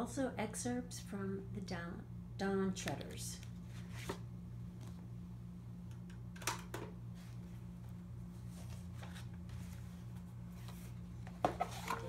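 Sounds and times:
book being handled: 3.7 - 4.2, 7.2 - 12.0.

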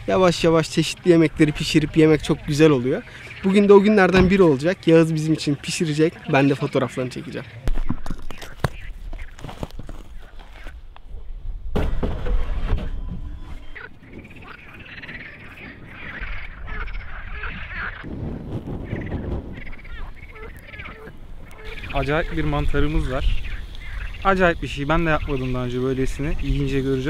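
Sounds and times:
low rumbles: 0.0 - 4.9
frogs croaking: 0.0 - 11.1, 13.6 - 18.1, 18.8 - 27.0
stones knocking: 4.2 - 4.5, 7.6 - 10.7.

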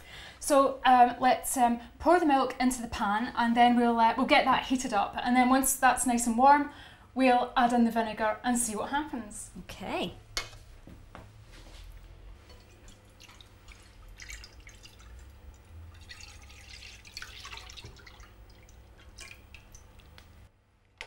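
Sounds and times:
liquid dripping: 12.3 - 20.5
milk pouring into a pan: 12.5 - 20.2.

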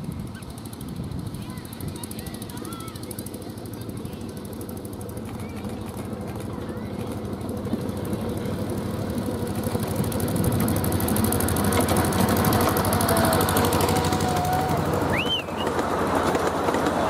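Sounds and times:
miniature train engine running: 0.0 - 17.0.

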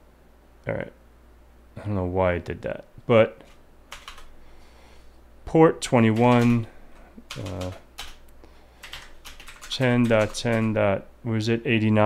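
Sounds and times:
computer keyboard key presses: 3.9 - 4.3, 6.1 - 6.6, 7.3 - 8.2, 8.8 - 10.7.

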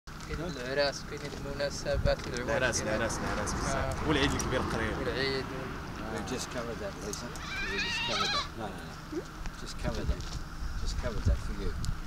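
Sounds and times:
people talking: 0.3 - 9.0, 9.6 - 10.2, 10.8 - 11.8
goat bleating: 7.3 - 8.6.

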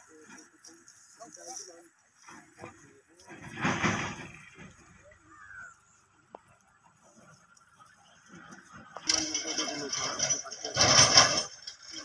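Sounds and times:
faint distant voices calling: 0.0 - 12.0.

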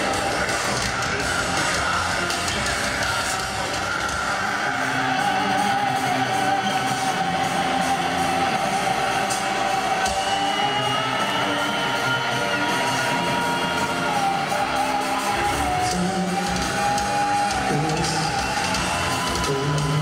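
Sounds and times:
heavy metal band playing live: 0.0 - 20.0.

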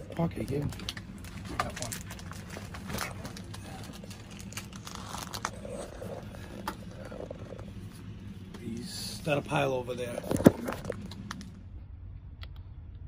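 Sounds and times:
low background hum: 0.0 - 13.0
paper rustling: 0.6 - 8.1, 10.1 - 11.5.

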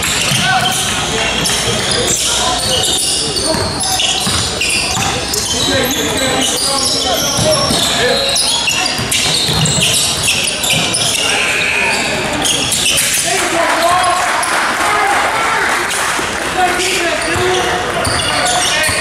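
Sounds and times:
shouts and chatter in gym: 0.0 - 19.0
basketball bouncing on hardwood: 3.5 - 5.1.

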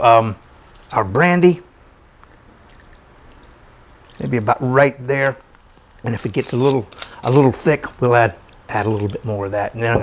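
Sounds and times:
liquid trickling onto a spoon: 2.2 - 4.4, 5.8 - 9.5.

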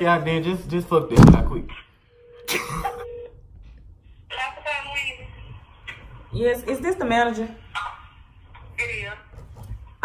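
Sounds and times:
person coughing: 2.5 - 3.0.

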